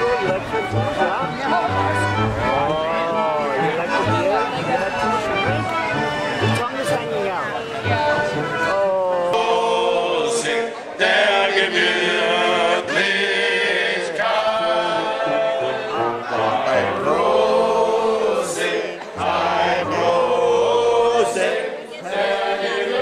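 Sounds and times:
instrumental backing: 0:00.0 - 0:10.4
crowd singing: 0:00.0 - 0:23.0.

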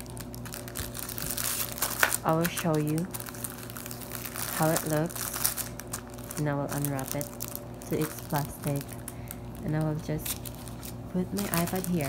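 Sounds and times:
plastic wrap crinkling: 0:00.0 - 0:12.0.

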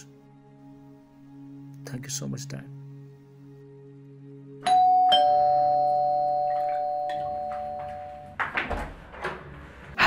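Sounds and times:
ding-dong doorbell chime: 0:04.6 - 0:08.4.

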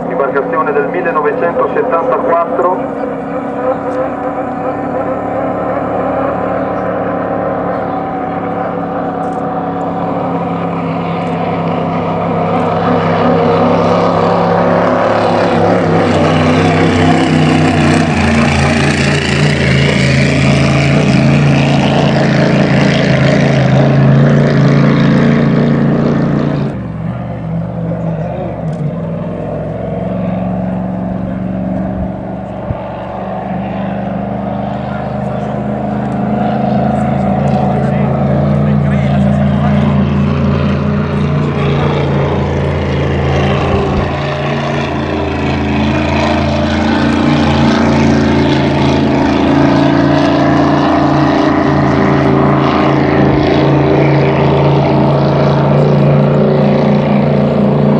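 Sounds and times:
racing boat engine running hard: 0:00.0 - 0:57.9.

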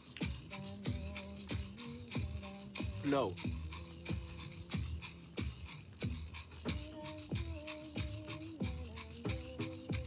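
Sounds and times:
hand drum beat: 0:00.0 - 0:10.0
wooden rattle shaking: 0:00.0 - 0:10.0.

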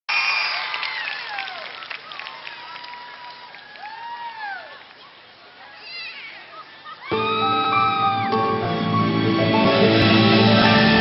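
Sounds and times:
audience applauding and cheering: 0:00.1 - 0:05.0, 0:07.1 - 0:11.0.

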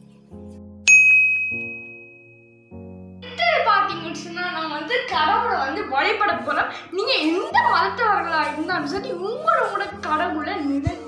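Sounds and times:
soft background music: 0:00.0 - 0:11.0
bright bell-like ding: 0:00.8 - 0:02.7.

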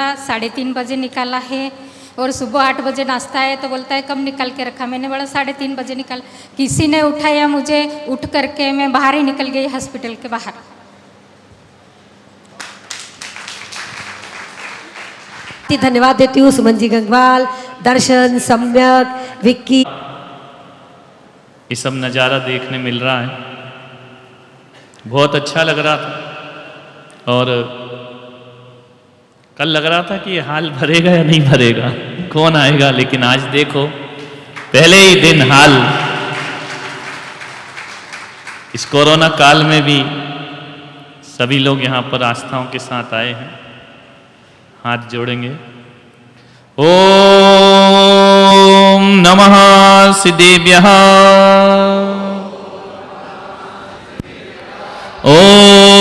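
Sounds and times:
hall background noise: 0:00.0 - 0:48.3, 0:49.2 - 0:56.0
audience applause: 0:12.5 - 0:15.7, 0:35.7 - 0:39.0.

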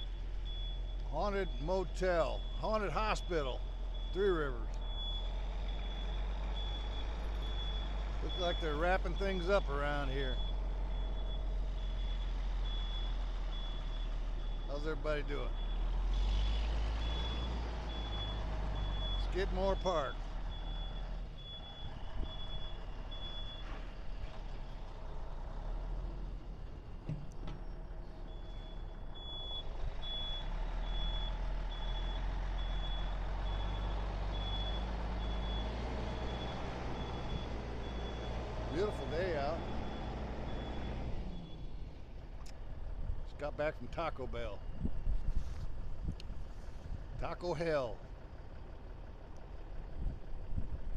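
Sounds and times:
backup alarm beeping: 0:00.0 - 0:09.7, 0:16.4 - 0:23.7, 0:28.3 - 0:41.7
diesel engine rumble: 0:00.0 - 0:50.9.

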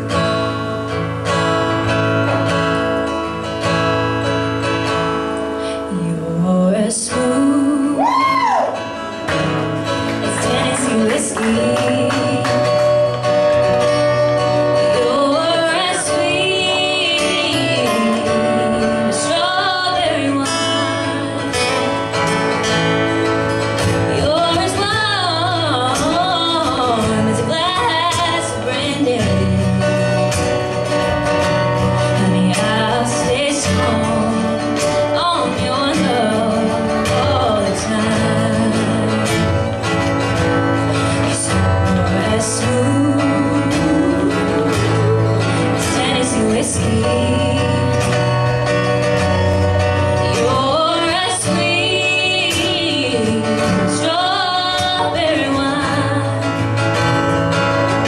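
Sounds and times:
acoustic guitars: 0:00.0 - 0:58.0
woman singing: 0:05.6 - 0:22.6, 0:23.2 - 0:58.0.

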